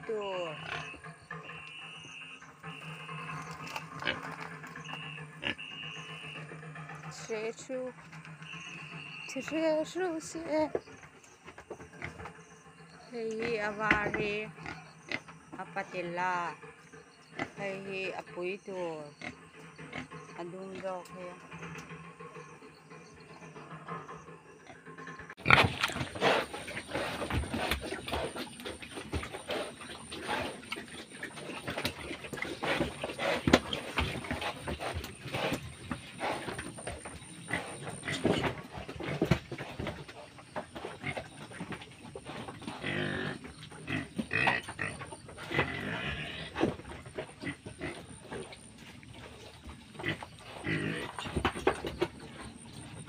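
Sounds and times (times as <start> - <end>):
pigs grunting: 0.0 - 53.0.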